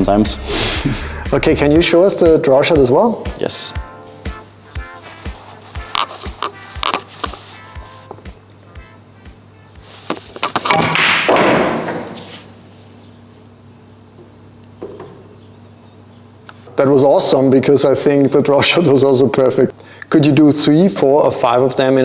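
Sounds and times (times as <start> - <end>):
background music with steady beat: 0.0 - 10.6
pool balls knocking and dropping: 10.1 - 12.5, 14.8 - 15.3
cue striking cue ball: 10.8 - 12.3.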